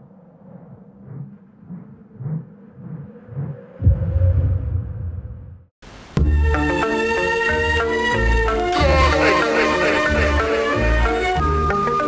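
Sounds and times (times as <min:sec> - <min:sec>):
soft low pulses: 0:00.0 - 0:06.2
deep rumbling boom: 0:03.8 - 0:05.7.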